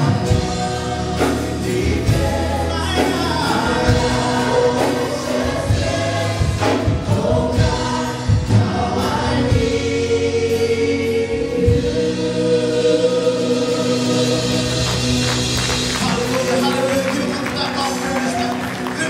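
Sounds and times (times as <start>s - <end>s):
group singing gospel song: 0.0s - 17.7s
keyboard: 0.0s - 19.0s.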